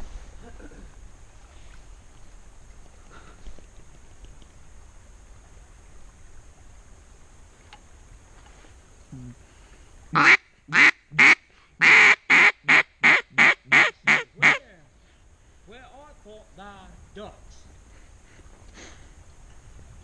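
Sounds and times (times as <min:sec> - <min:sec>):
duck call quacks: 0:10.2 - 0:14.6.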